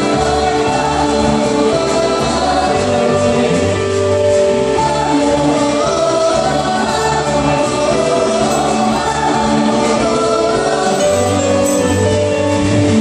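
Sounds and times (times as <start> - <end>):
group singing worship song: 0.0 - 12.5.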